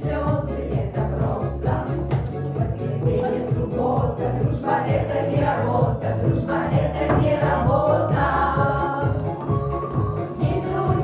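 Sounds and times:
accompaniment with steady beat: 0.0s - 11.0s
women's vocal group singing: 0.0s - 11.0s.

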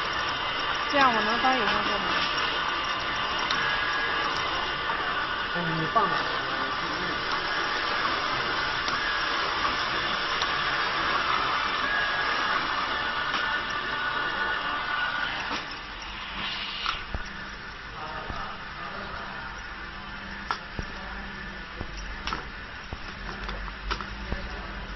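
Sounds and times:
labeling machine whirring: 0.0s - 24.9s.

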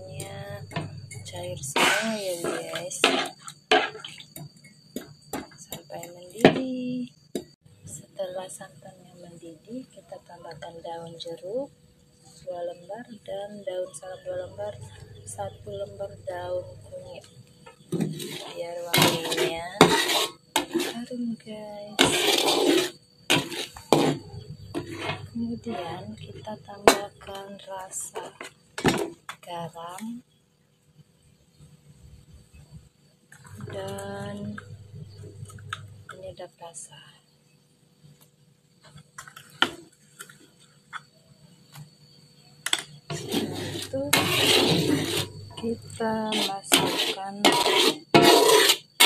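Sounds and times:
person talking: 0.0s - 3.2s, 5.7s - 7.1s, 12.5s - 17.2s, 18.5s - 19.8s, 25.4s - 28.3s, 33.5s - 34.8s, 43.8s - 44.5s, 45.6s - 47.6s
coconut milk boiling: 0.2s - 5.9s, 17.8s - 25.4s, 42.6s - 49.0s
metal spatula scraping a pan: 0.5s - 4.4s, 18.0s - 21.2s, 21.9s - 27.3s, 43.1s - 49.0s.

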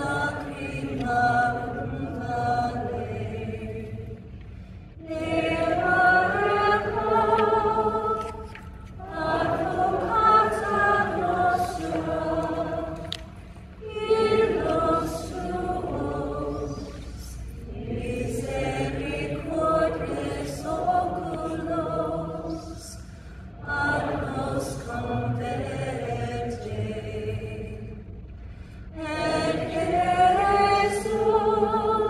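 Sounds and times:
choir singing a slow chant: 0.0s - 28.2s, 28.8s - 32.0s.

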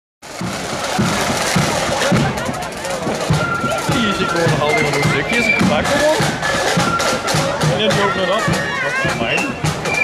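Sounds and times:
snare drums rattling: 0.2s - 10.0s
spectators talking: 0.2s - 10.0s.

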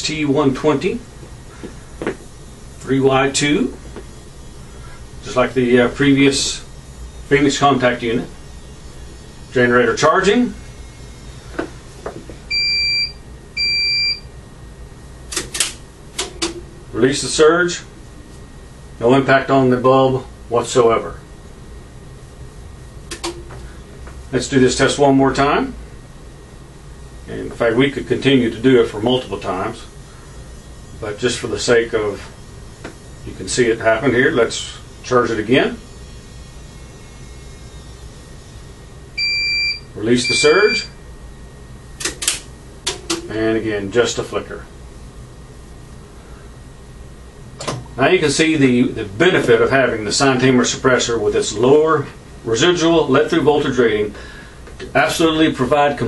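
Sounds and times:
high electronic beeps: 12.5s - 14.2s, 39.2s - 40.9s.

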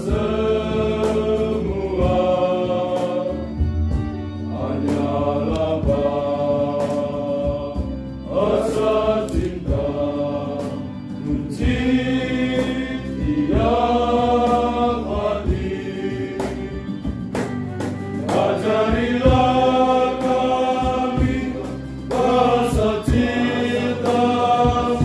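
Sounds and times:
acoustic guitars: 0.0s - 25.0s
male choir singing a hymn: 0.0s - 25.0s
violin: 0.0s - 25.0s.

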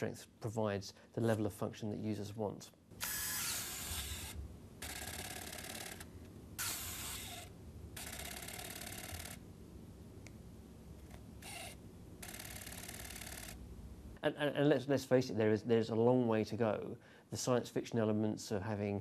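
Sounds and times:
prosthetic hand motors whirring: 3.0s - 9.4s, 11.1s - 13.6s.

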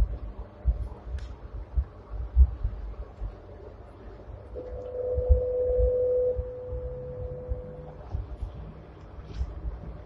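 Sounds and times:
tram steady hum: 0.0s - 10.0s.

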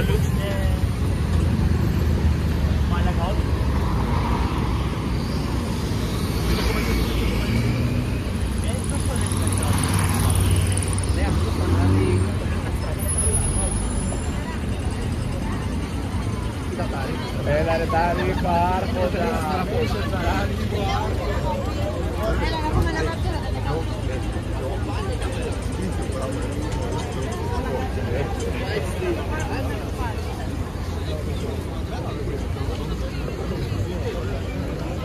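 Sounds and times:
low rumble of car engines: 0.0s - 35.0s
voices of passers-by: 0.0s - 35.0s.

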